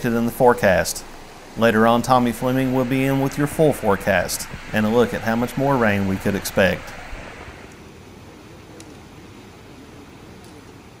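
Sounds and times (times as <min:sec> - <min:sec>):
floodwater pouring over spillway: 0:00.0 - 0:07.7.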